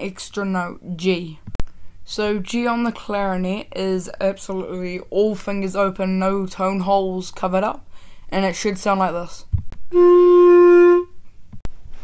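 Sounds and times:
clarinet held note: 0:09.9 - 0:11.2.

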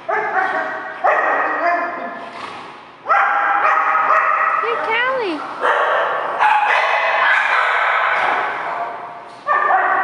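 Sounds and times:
dogs barking with echo: 0:00.0 - 0:02.0, 0:03.1 - 0:10.0.

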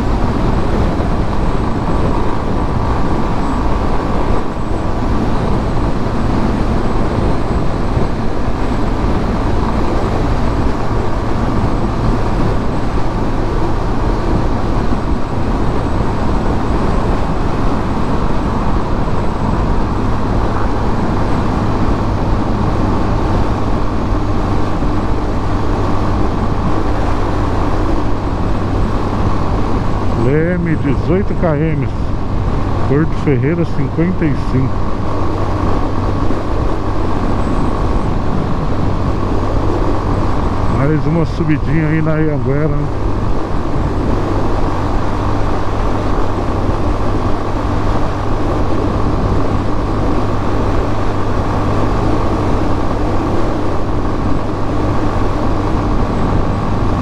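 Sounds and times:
motorcycle engine cruising: 0:00.0 - 0:57.0
wind and road noise: 0:00.0 - 0:57.0
man speaking: 0:30.2 - 0:32.2, 0:32.9 - 0:34.7, 0:40.7 - 0:42.9.

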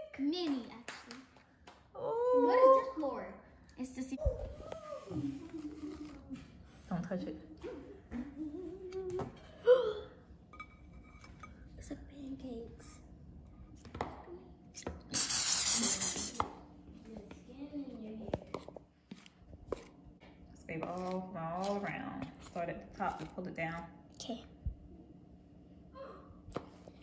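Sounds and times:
aerosol spray burst: 0:15.1 - 0:16.4.

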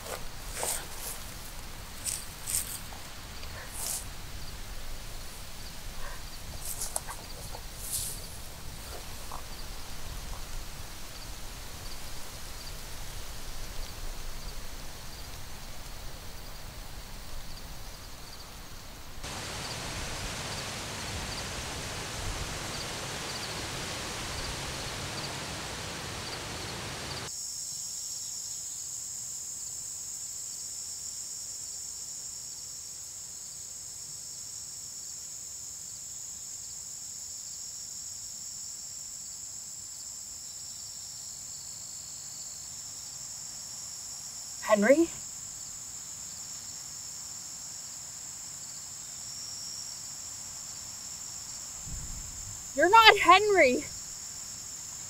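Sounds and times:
high insect ticks: 0:00.0 - 0:19.0
insect chorus drone: 0:00.0 - 0:55.0.

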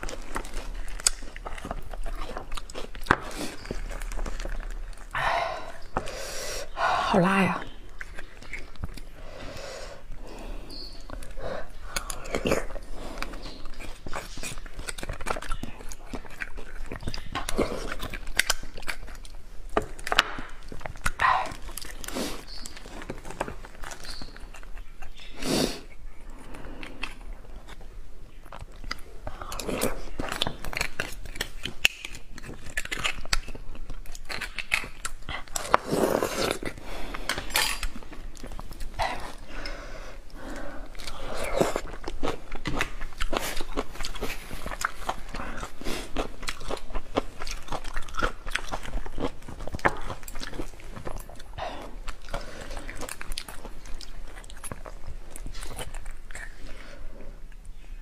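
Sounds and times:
woman chewing with mouth smacks: 0:00.0 - 0:58.0.

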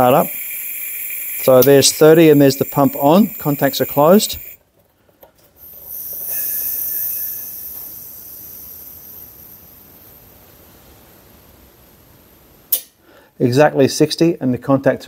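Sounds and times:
compressed air hissing: 0:00.0 - 0:04.6, 0:05.6 - 0:11.8.

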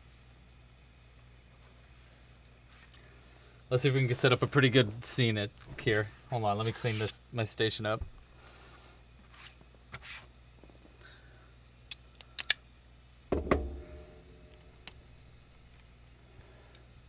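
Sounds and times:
heavy knock with ringing tail: 0:13.3 - 0:14.4.

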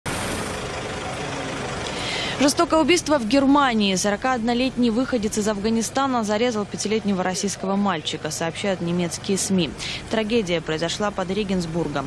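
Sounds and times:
vehicle engine idling: 0:00.1 - 0:12.0.

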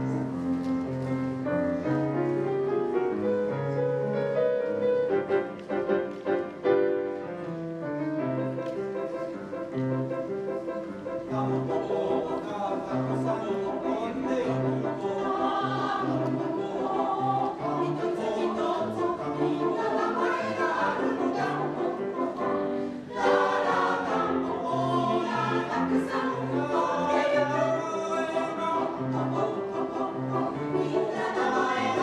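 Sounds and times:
grand piano accompaniment: 0:00.0 - 0:32.0
mixed choir singing: 0:11.2 - 0:32.0.

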